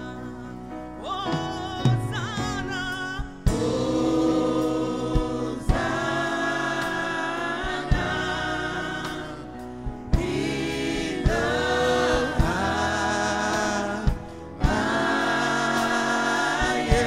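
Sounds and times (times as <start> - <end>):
band backing: 0.0 - 17.0
gospel choir singing: 0.0 - 17.0.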